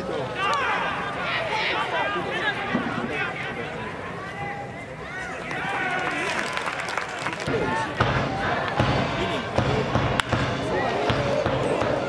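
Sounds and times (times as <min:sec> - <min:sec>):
voices calling out: 0:00.0 - 0:12.0.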